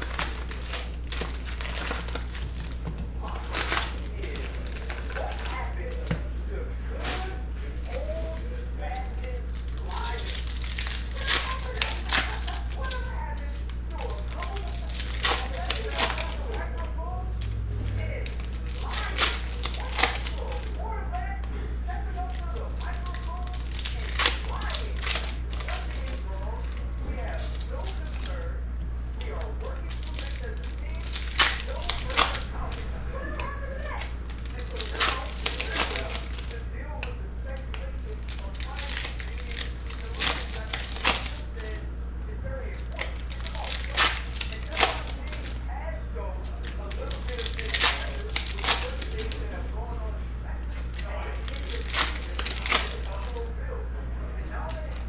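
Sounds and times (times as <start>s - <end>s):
foil wrappers crinkling: 0.0s - 55.0s
steady low hum: 0.0s - 55.0s.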